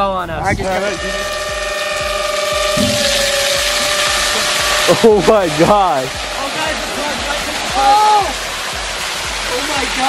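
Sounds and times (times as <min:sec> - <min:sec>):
hydraulic hoist whine: 0:00.5 - 0:06.4
water pouring out: 0:00.6 - 0:10.0.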